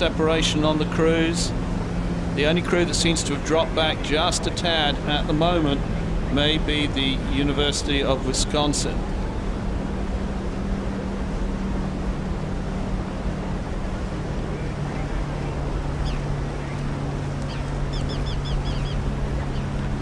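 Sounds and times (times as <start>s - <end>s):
motorboat engine drone: 0.0s - 20.0s
water noise: 0.0s - 20.0s
wind: 0.0s - 20.0s.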